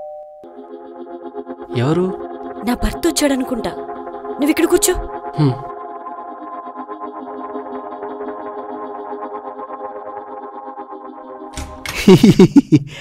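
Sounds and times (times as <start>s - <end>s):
sustained ambient film music chord: 0.0s - 11.5s.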